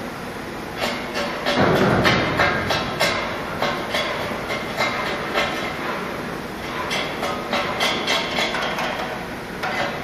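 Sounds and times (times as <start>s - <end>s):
sharp metallic knocks: 0.8s - 10.0s
steady rumbling noise: 1.2s - 8.8s.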